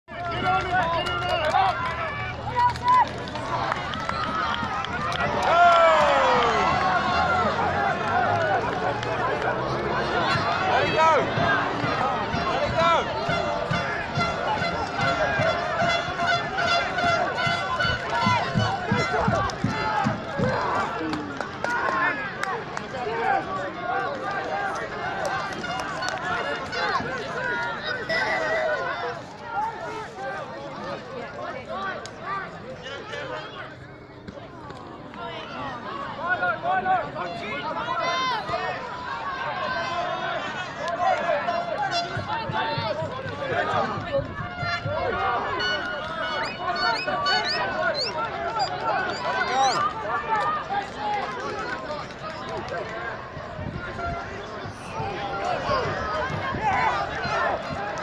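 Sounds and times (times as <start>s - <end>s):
crowd shouting: 0.1s - 58.0s
loud falling shout: 5.3s - 8.6s.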